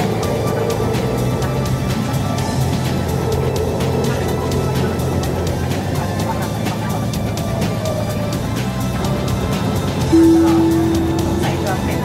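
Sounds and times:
electronic beep: 10.2s - 12.0s.

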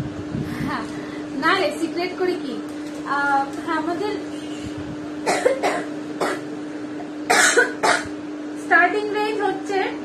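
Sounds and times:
woman coughing into hand: 5.2s - 6.5s, 7.3s - 8.2s.

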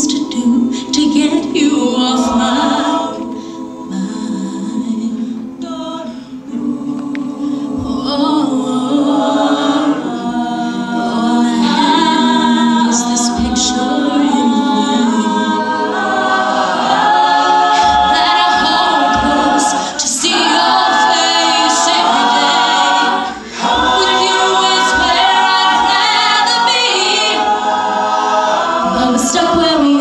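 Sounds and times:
a cappella group singing: 0.0s - 30.0s
female lead singer: 28.8s - 30.0s.

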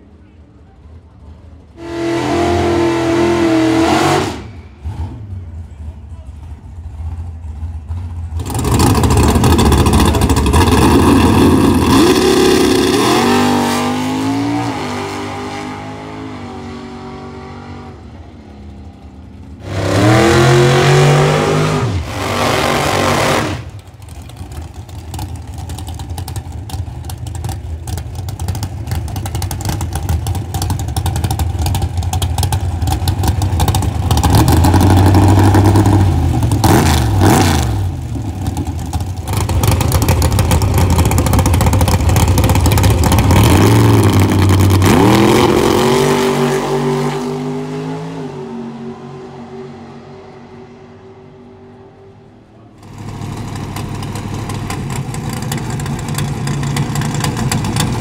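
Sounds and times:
engines idling and revving: 0.0s - 58.0s
race car engines full throttle: 0.0s - 58.0s
high-revving burnout: 1.8s - 5.2s, 8.4s - 18.0s, 19.6s - 23.8s, 39.3s - 48.5s.

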